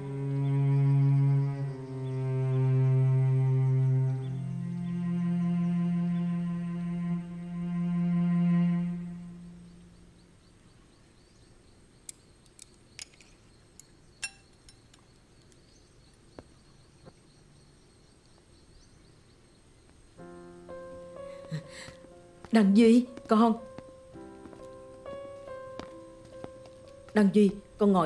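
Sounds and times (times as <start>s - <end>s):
slow music with held low notes: 0.0s - 10.6s, 20.1s - 28.0s
light clinks: 12.5s - 15.6s.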